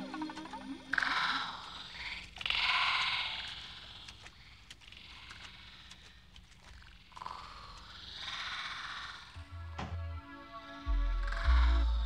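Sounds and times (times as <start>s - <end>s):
pulsing croak-like rasps: 0.0s - 9.5s.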